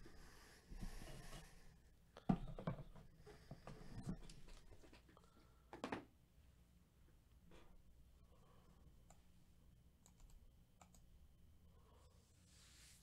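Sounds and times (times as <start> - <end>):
faint knocks and clicks: 2.2 - 6.1.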